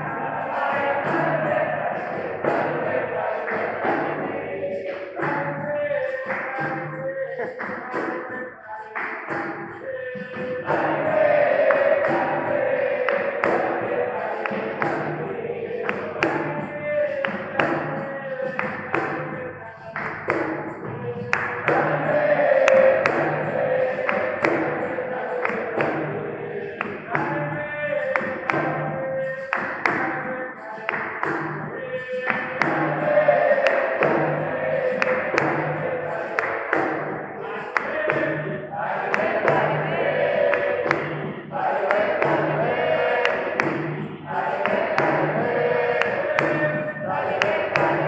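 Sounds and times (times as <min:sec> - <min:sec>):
group singing: 0:00.0 - 0:48.0
hand drum rhythm: 0:00.0 - 0:48.0
handclaps: 0:00.0 - 0:48.0.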